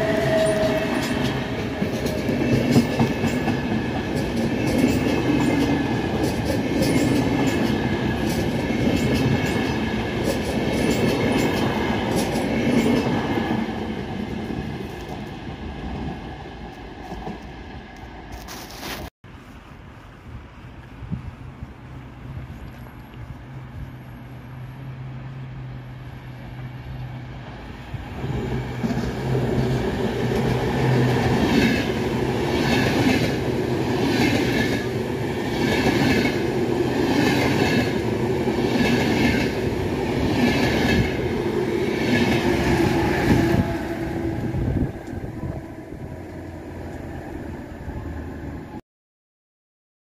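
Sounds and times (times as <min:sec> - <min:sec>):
electric train passing: 0:00.0 - 0:18.3, 0:21.0 - 0:48.8.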